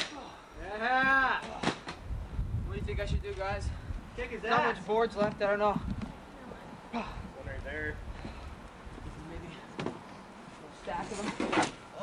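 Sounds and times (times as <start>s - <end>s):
young men talking: 2.6s - 8.4s, 9.1s - 9.9s.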